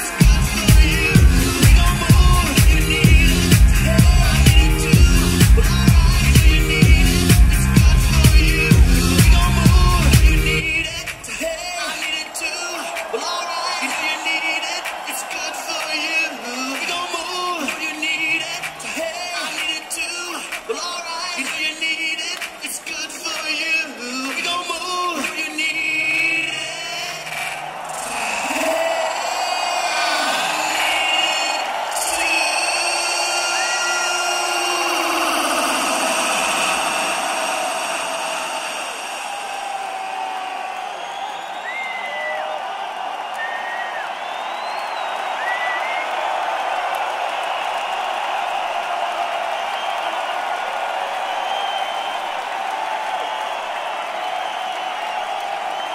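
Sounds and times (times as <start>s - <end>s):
concert crowd cheering: 0.0s - 55.9s
whistles from crowd: 26.1s - 35.5s, 36.1s - 55.9s.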